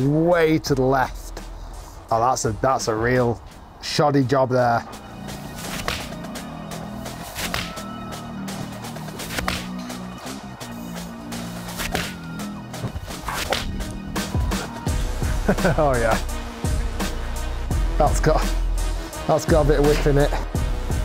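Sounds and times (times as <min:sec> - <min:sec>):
background music: 0:00.0 - 0:21.0
golf iron striking balls: 0:05.0 - 0:10.4, 0:11.6 - 0:14.6.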